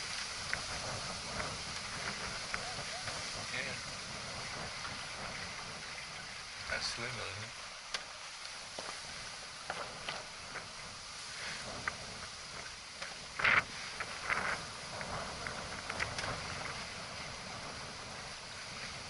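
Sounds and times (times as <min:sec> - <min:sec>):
water rushing along hull: 0:00.0 - 0:19.0
wind on microphone: 0:00.0 - 0:19.0
small ticks and knocks: 0:07.9 - 0:09.0, 0:09.6 - 0:10.7, 0:11.8 - 0:16.8.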